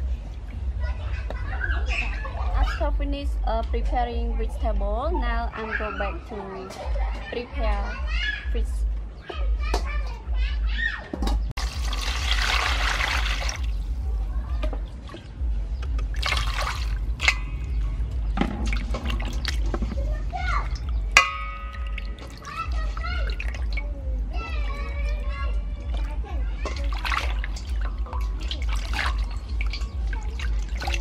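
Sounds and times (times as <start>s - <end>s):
children chattering: 0.6s - 11.5s, 13.6s - 15.9s, 19.1s - 31.0s
water splashing in a steel basin: 11.6s - 31.0s.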